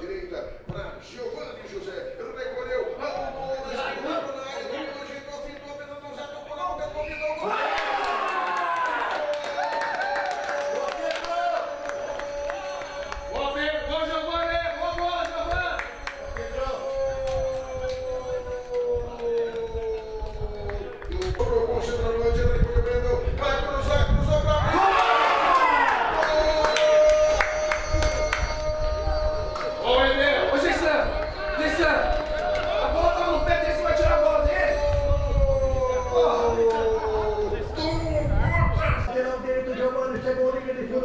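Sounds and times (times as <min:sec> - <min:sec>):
sports commentator shouting: 0:24.4 - 0:39.0.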